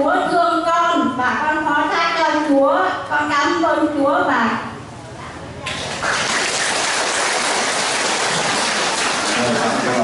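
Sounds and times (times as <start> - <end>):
congregation applauding: 5.7 - 10.0.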